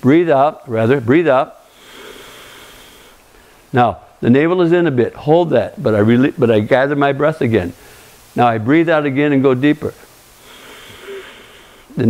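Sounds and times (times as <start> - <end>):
man exhaling slowly: 1.7 - 3.7, 10.4 - 12.0.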